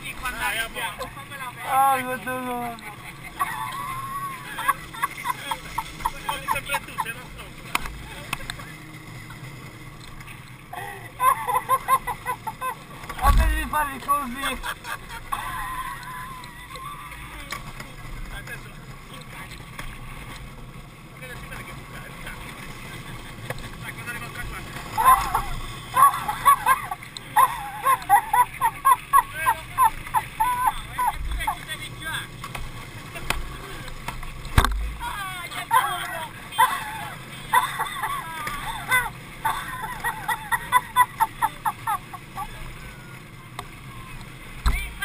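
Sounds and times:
kart wheels rolling on asphalt: 0:00.0 - 0:45.0
voices crying out: 0:01.0 - 0:07.3, 0:10.7 - 0:14.6, 0:15.2 - 0:17.5, 0:24.9 - 0:32.1, 0:35.0 - 0:44.2.

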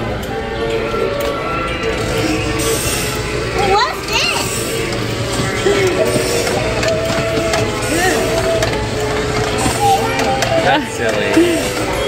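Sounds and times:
toy playing music: 0:00.6 - 0:12.0.

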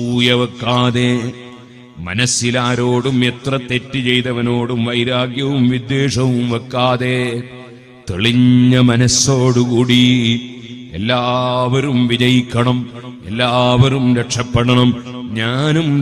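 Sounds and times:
man chanting: 0:00.0 - 0:16.0.

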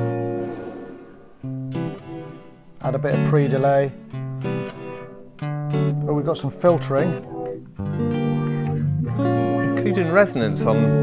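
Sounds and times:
clean electric guitar with reverb: 0:00.0 - 0:11.0.

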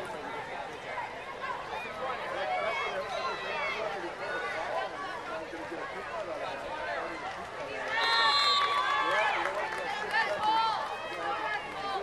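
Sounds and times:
spectators calling and shouting: 0:00.0 - 0:12.0.

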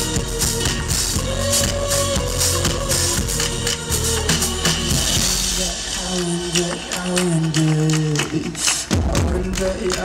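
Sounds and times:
electro-pop band playing: 0:00.0 - 0:10.0.

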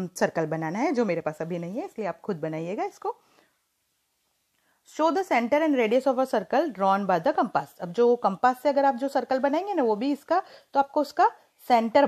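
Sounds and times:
woman speaking: 0:00.0 - 0:03.2, 0:04.9 - 0:12.0
faint intake of breath: 0:10.4 - 0:10.8.

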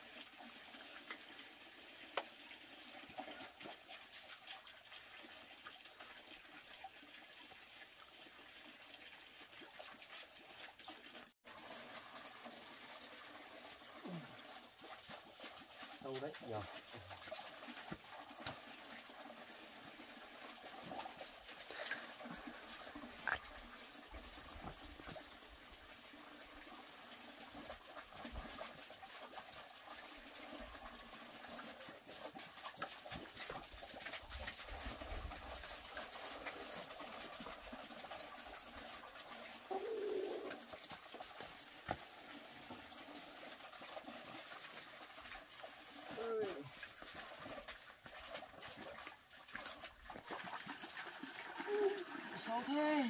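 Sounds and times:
dove cooing: 0:39.7 - 0:40.7.

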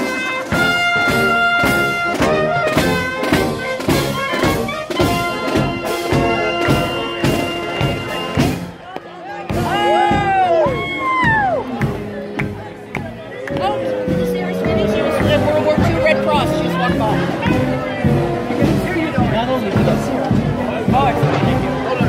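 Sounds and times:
steady drum beat: 0:00.0 - 0:08.8, 0:09.4 - 0:22.0
brass band music: 0:00.0 - 0:22.0.

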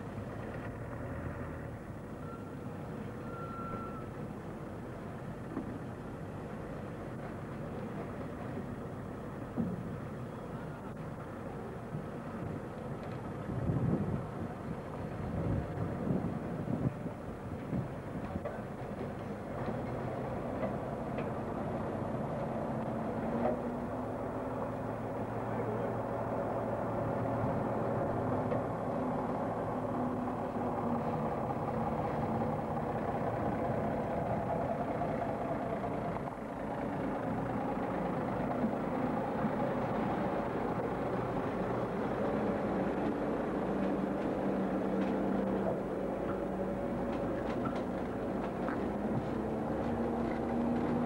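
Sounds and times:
truck diesel engine running: 0:17.9 - 0:51.0.

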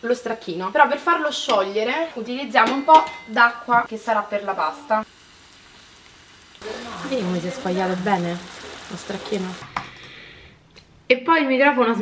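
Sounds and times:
sausage sizzling in a frying pan: 0:00.0 - 0:10.3
water poured into sizzling pan: 0:04.7 - 0:09.6.

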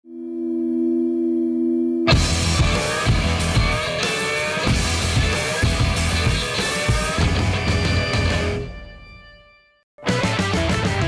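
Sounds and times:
sustained electronic tone: 0:00.0 - 0:03.8.

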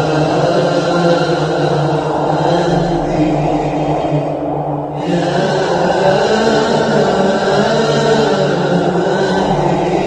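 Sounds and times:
voices chanting held notes: 0:00.0 - 0:10.0.

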